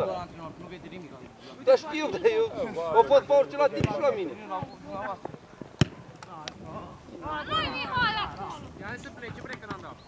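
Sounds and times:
football kicked with thud: 5.8s - 6.0s.

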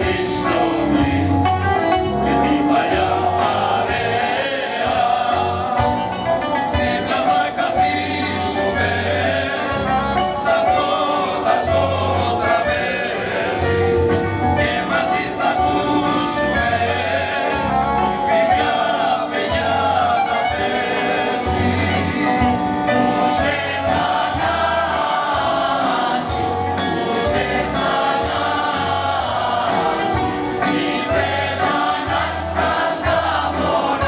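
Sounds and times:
accordion: 0.0s - 34.0s
mixed choir singing in harmony: 0.0s - 34.0s.

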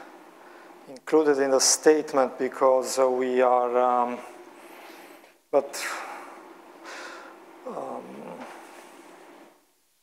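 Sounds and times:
faint room hum: 0.0s - 10.0s
man humming: 7.6s - 8.7s.

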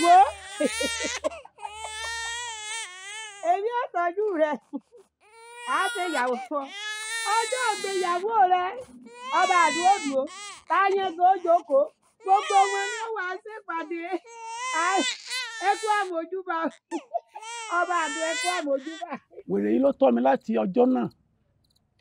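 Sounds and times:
infant crying: 0.0s - 3.6s, 5.2s - 19.2s.

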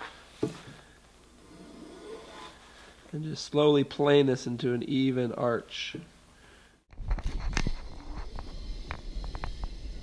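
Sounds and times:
plane swishing along wood: 1.3s - 2.8s.

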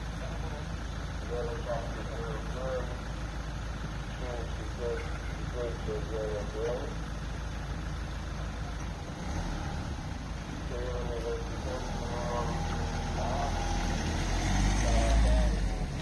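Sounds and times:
car engine at low revs: 0.0s - 16.0s.

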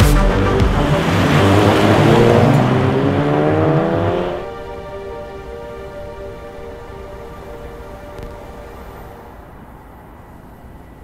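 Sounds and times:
car engine accelerating hard: 0.0s - 5.3s
background music: 0.0s - 11.0s.

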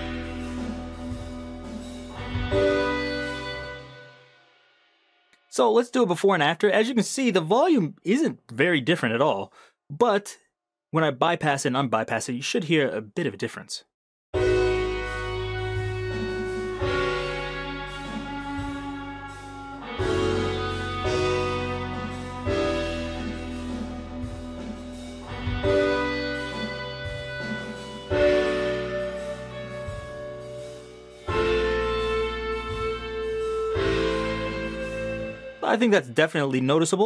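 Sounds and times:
reverb-washed instrument chords: 0.0s - 4.3s, 14.4s - 35.6s.

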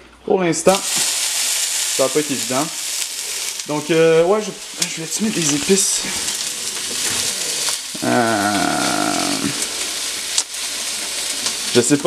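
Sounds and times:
steak sizzling in a frying pan: 0.7s - 12.0s
drawn-out vocal euh: 5.5s - 10.0s.

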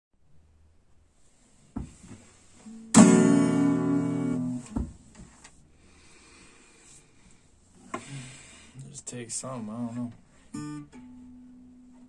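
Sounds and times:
acoustic guitar chord strummed: 2.7s - 4.7s, 9.7s - 12.0s.

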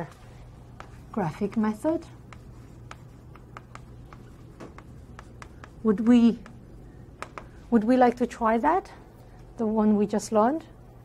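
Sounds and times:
low room hum: 0.0s - 11.0s
writing tool scratching: 0.7s - 6.6s.

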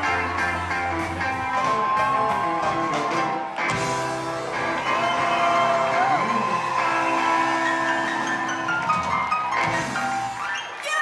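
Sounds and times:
live rock band playing: 0.0s - 10.8s.

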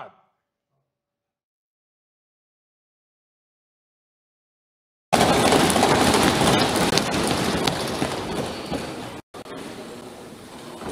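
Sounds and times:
people thumping wooden desks: 5.2s - 10.9s.

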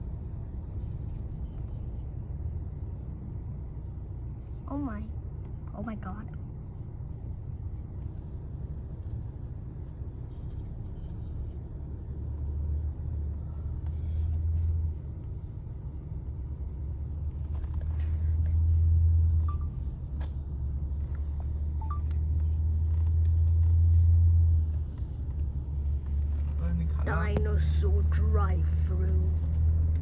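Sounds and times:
car driving slowly rumble: 0.0s - 30.0s.

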